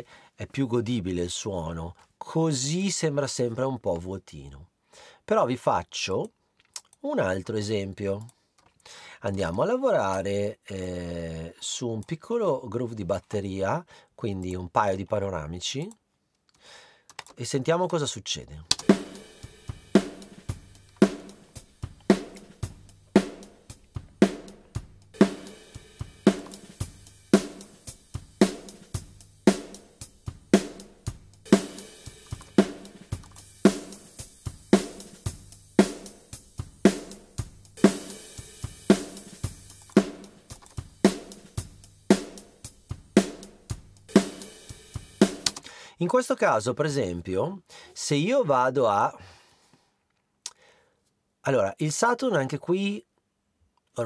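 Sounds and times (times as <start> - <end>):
acoustic drum kit groove: 18.7 - 45.8.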